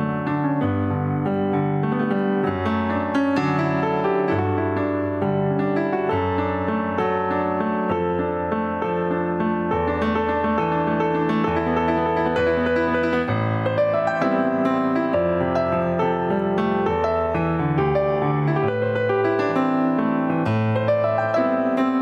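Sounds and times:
keyboard playing piano chords: 0.0 - 22.0.

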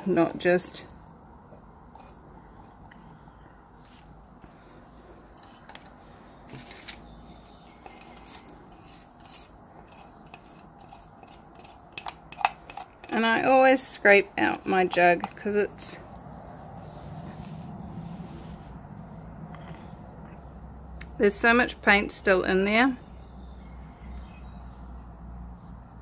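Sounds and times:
paint cups rubbing on tabletop: 3.8 - 15.6.

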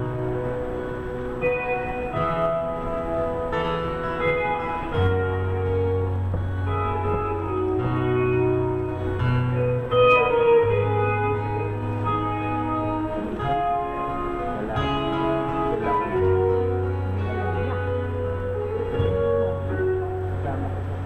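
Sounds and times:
guitar over bass line: 0.0 - 21.0.

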